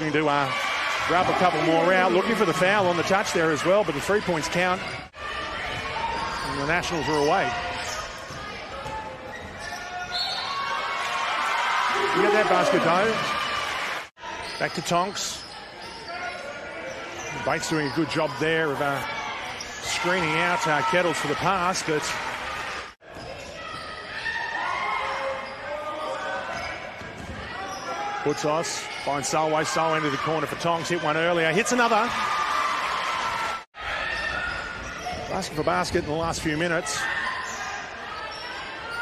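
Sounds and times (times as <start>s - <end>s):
crowd cheering: 0.0s - 6.2s, 10.3s - 14.3s, 29.3s - 34.7s
crowd and player voices: 0.0s - 39.0s.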